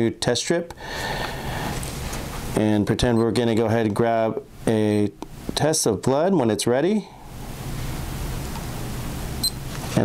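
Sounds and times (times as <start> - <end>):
steady background hiss: 0.0 - 10.0
glucose meter beep: 9.4 - 9.6.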